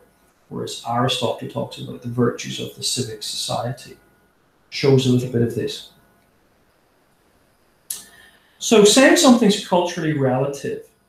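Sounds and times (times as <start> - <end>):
sharp intake of breath: 7.9 - 8.6.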